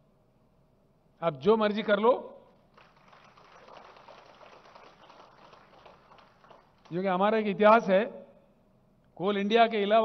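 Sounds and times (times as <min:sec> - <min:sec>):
faint audience applause: 0:02.6 - 0:07.1.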